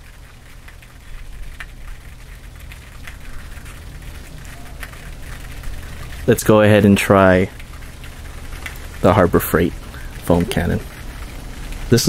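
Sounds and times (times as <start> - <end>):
foam dripping on concrete: 0.0 - 12.0
low steady rumble: 0.0 - 12.0.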